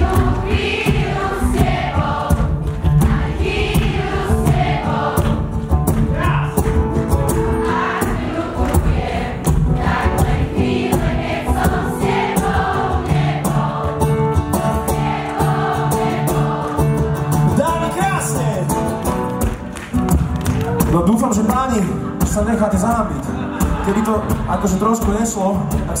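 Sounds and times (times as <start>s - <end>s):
audience singing along: 0.0s - 6.0s, 7.2s - 17.6s, 23.4s - 24.7s
live band playing: 0.0s - 26.0s.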